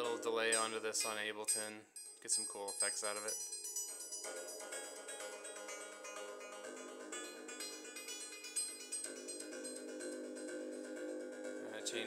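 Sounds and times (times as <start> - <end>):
synthesizer percussive notes: 0.0 - 12.0.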